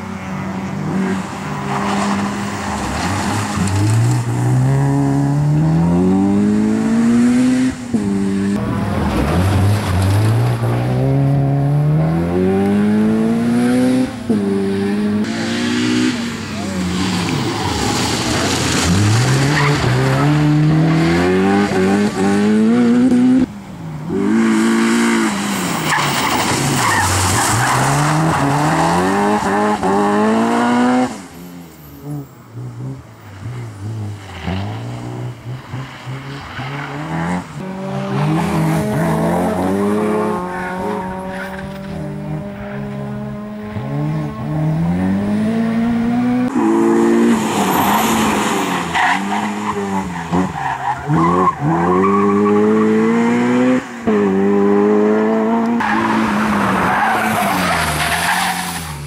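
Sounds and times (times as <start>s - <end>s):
car engine revving hard: 3.6s - 23.5s, 26.8s - 31.2s, 32.0s - 58.6s
tyres squealing and skidding: 15.3s - 22.2s, 24.3s - 32.2s, 46.5s - 53.4s, 55.8s - 59.0s.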